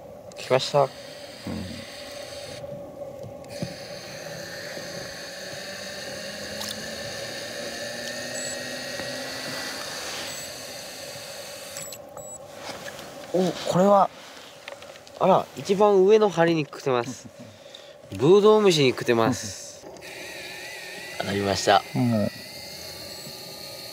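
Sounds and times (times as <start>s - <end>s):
electric reel motor whining: 0.3s - 12.4s, 19.8s - 23.9s.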